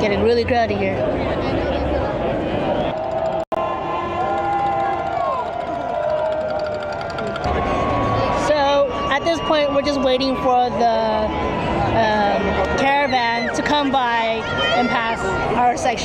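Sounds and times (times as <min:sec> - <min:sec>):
crowd yelling and cheering: 0:02.1 - 0:16.0.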